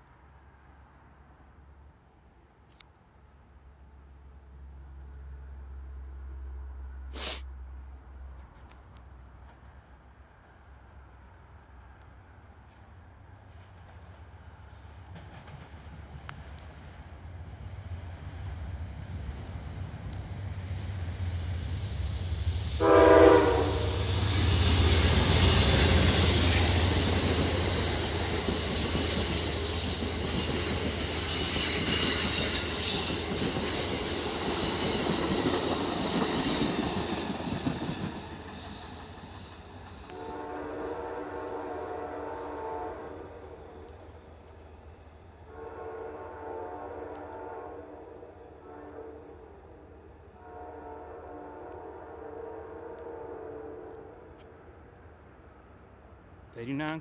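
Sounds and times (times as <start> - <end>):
train passing with deep rumble: 0.0 - 57.0
high-pitched wheel and rail noise: 20.1 - 40.2
locomotive horn blast: 22.8 - 24.3, 40.1 - 43.5, 45.5 - 49.4, 50.4 - 54.3
distant train horn: 22.8 - 32.8, 40.1 - 44.1, 45.4 - 54.4.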